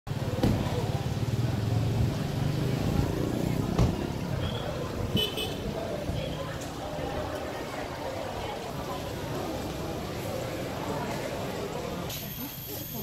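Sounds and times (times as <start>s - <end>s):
background voices: 0.2s - 13.0s.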